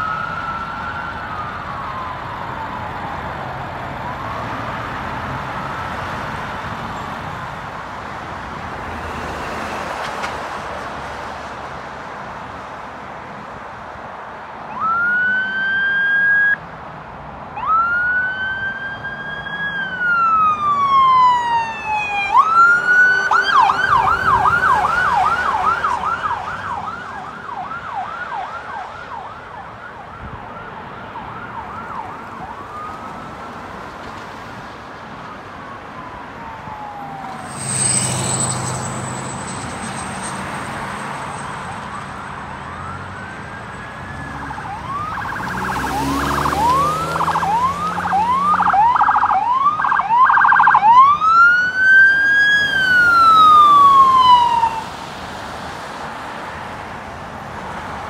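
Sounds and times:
ambulance siren wailing: 0:00.0 - 0:06.2, 0:14.7 - 0:16.6, 0:17.6 - 0:55.2
traffic noise: 0:00.0 - 0:58.0.

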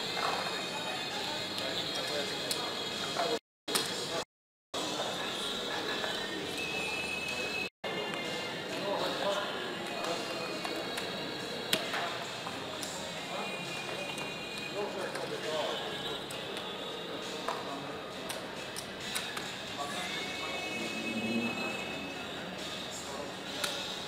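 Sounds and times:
background music: 0:07.9 - 0:24.0
background voices: 0:19.8 - 0:22.6.

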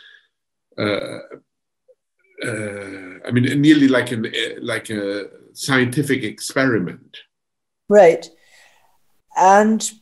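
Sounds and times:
man's hesitation syllable: 0:00.8 - 0:01.4, 0:02.4 - 0:07.2.

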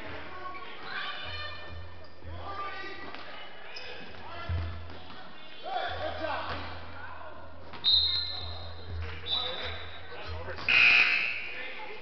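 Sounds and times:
voices in a gym: 0:00.0 - 0:12.0
scoreboard buzzer: 0:10.7 - 0:11.4.

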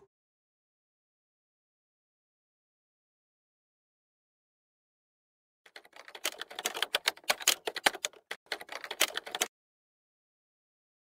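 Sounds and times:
keyboard typing clicks: 0:05.7 - 0:09.5.

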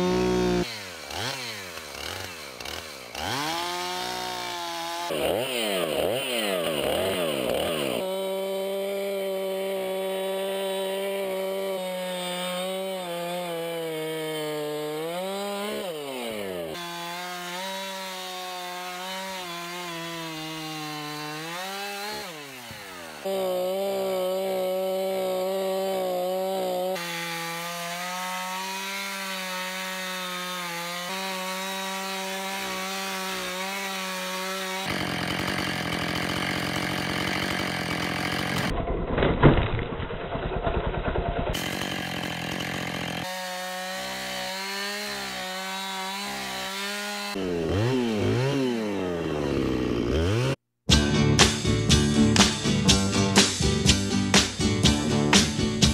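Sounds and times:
chainsaw cutting wood: 0:00.0 - 0:55.9.

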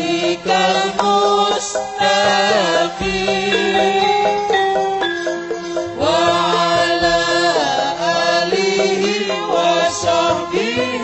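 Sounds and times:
gamelan accompaniment: 0:00.0 - 0:11.0
person chanting melismatic melody: 0:00.0 - 0:11.0.

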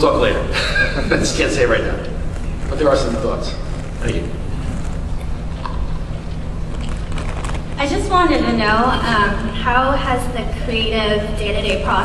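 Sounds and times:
low rumble of a large hall: 0:00.0 - 0:12.0
faint clicks and crackles: 0:03.7 - 0:07.8.

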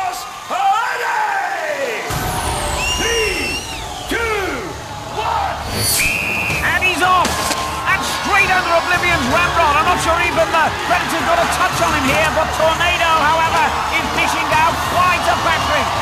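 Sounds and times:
crowd shouting and cheering: 0:00.0 - 0:16.0
whistle blast: 0:02.1 - 0:04.7, 0:05.7 - 0:06.9
driving background music: 0:02.1 - 0:16.0.

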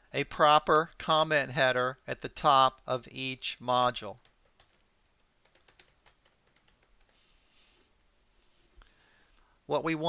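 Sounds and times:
computer keyboard typing: 0:04.1 - 0:07.2.

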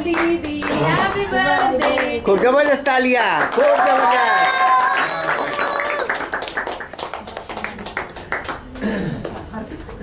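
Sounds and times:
people clapping: 0:00.0 - 0:10.0.

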